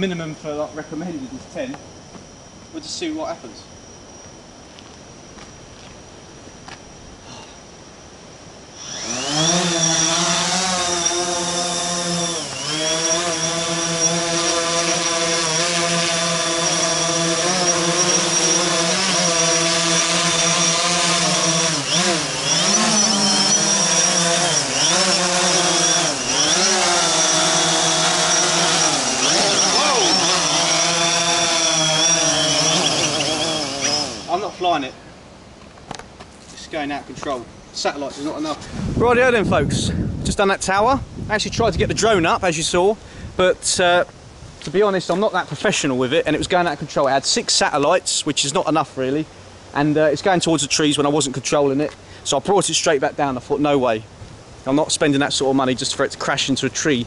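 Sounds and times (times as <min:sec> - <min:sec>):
drone propellers buzzing: 0:01.9 - 0:35.2.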